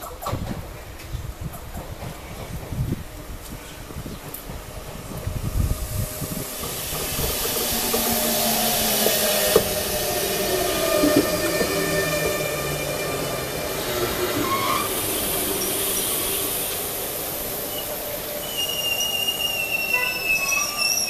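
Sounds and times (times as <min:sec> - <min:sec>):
train wheels and air rushing: 0:00.2 - 0:21.0.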